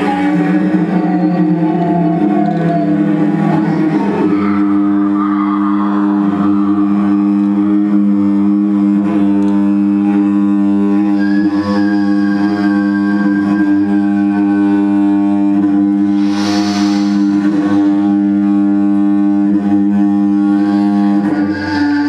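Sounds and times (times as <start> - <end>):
low droning music: 0.0 - 22.0
thin high held tone: 11.0 - 15.0, 16.0 - 22.0.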